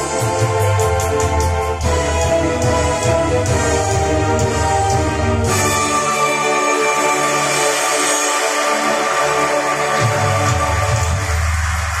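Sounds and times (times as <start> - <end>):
karaoke music over loudspeakers: 0.0 - 12.0.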